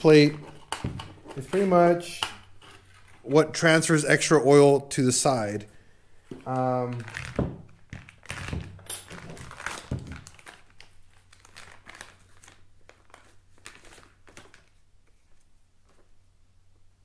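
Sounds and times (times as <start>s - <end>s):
plastic bag crinkling: 0.1s - 3.3s, 6.4s - 14.8s.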